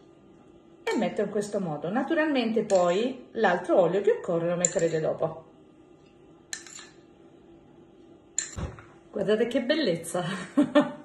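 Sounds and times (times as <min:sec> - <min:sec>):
metal spoon clinking on bowl: 0:04.6 - 0:05.0, 0:06.5 - 0:07.0.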